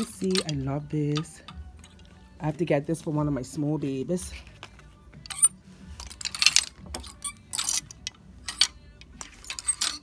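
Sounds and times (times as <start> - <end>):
wooden hangers scraping along a rail: 5.3 - 10.0.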